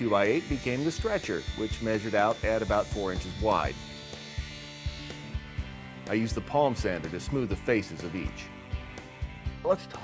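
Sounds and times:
table saw cutting wood: 0.0 - 9.8
background music: 0.0 - 10.0.

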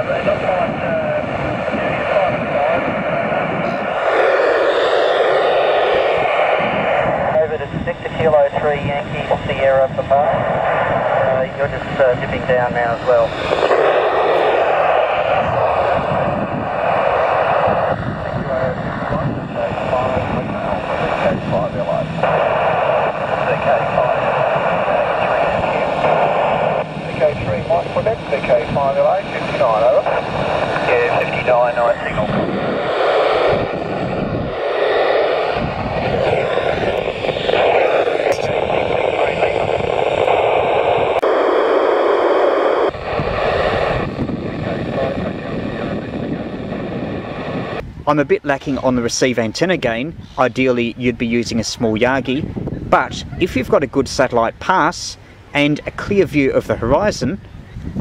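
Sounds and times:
garbled radio voices: 0.0 - 57.4
radio hiss: 0.0 - 57.5.

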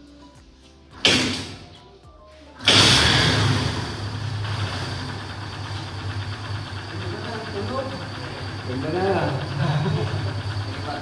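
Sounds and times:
motorcycle engine starting and idling: 1.0 - 1.8, 2.6 - 11.0
sudden burst: 2.6 - 11.0.

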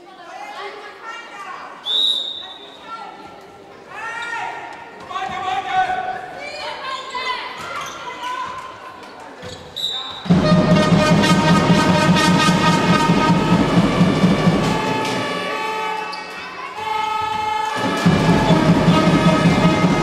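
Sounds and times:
players calling: 9.8 - 20.0.

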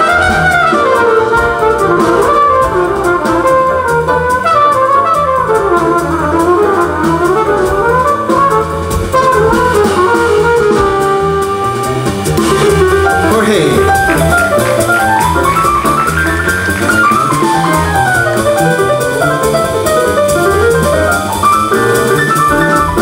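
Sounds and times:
drum kit: 0.0 - 23.0
trumpet solo: 0.0 - 23.0
upright bass: 0.0 - 23.0
keyboard: 11.6 - 23.0.

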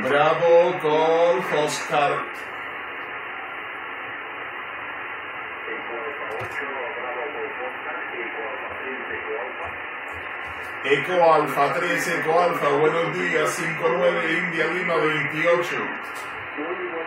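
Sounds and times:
radio station reply: 0.0 - 4.0, 5.0 - 17.0
radio static hiss: 0.0 - 17.0
faint wavering radio voice: 5.5 - 9.9, 10.5 - 17.0.

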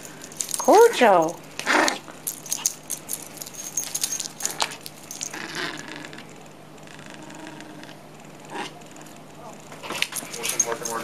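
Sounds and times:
harness jingling: 0.0 - 5.8, 10.1 - 11.0
rustling: 0.0 - 5.9, 9.8 - 11.0
paws clicking and scuffing: 0.1 - 5.5, 9.7 - 11.0.

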